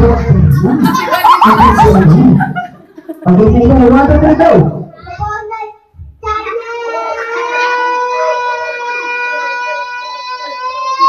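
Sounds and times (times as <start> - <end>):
child singing long note: 6.2 - 11.0.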